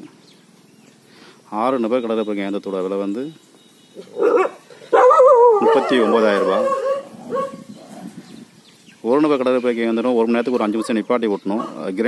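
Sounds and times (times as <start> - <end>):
dog barking: 4.2 - 7.6.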